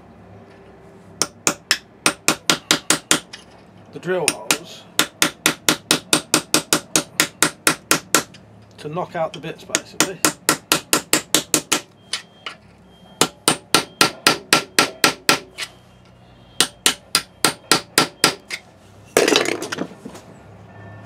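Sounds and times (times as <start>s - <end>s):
hammer striking metal chisel: 1.2s - 3.5s, 4.2s - 8.4s, 9.3s - 12.6s, 13.2s - 15.7s, 16.6s - 18.6s.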